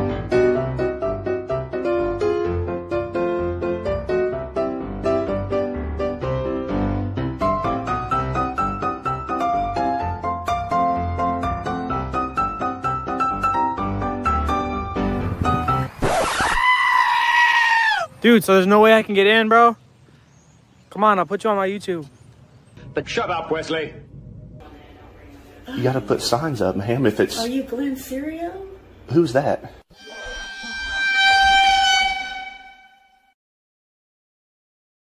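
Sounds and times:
high-pitched scream: 16.0s - 18.1s, 29.9s - 33.3s
long horn-like blast: 29.9s - 33.4s.

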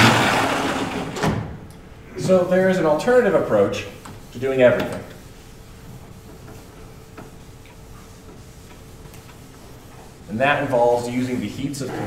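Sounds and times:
eraser rubbing on blackboard: 3.4s - 12.0s.

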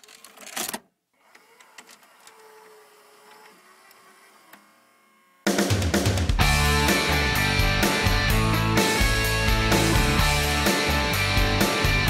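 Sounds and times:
small motorized mechanism whirring: 1.2s - 5.5s.

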